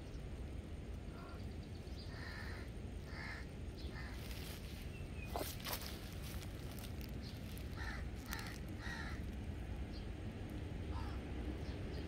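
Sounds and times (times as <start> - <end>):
low outdoor rumble: 0.0 - 12.0
harsh caw-like bird calls: 2.0 - 4.6, 7.5 - 9.4, 10.9 - 11.3.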